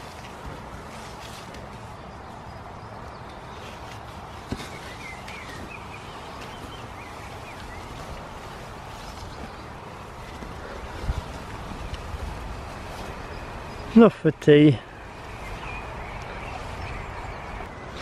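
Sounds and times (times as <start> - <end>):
soil rustling and crumbling: 0.0 - 18.0
bird chirping: 1.7 - 10.8, 11.7 - 18.0.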